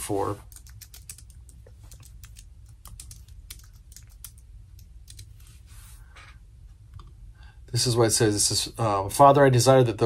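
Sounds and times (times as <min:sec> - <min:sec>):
steady low hum: 0:00.0 - 0:10.0
typing on keyboard: 0:00.4 - 0:05.3.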